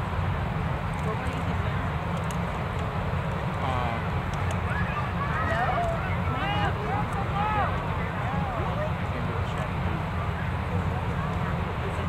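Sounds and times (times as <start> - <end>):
faint voices talking: 0.5 - 12.0.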